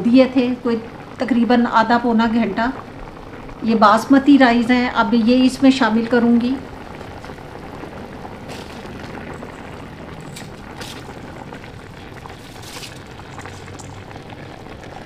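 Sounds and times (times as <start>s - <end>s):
pot of stock boiling: 0.0s - 15.0s
rice poured into pot: 6.7s - 15.0s.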